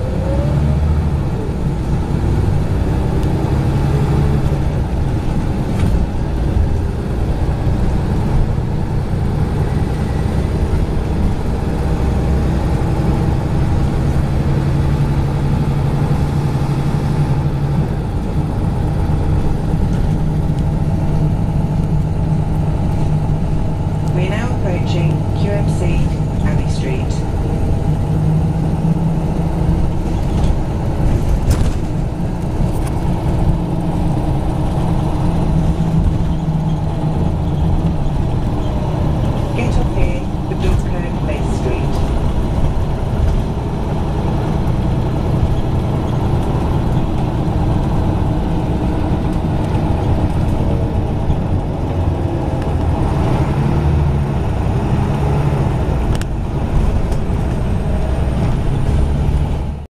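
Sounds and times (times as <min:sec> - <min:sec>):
bus engine drone: 0:00.0 - 0:59.9.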